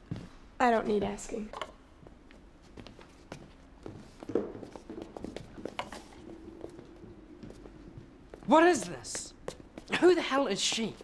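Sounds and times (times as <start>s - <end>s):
faint footsteps: 0.0s - 11.0s.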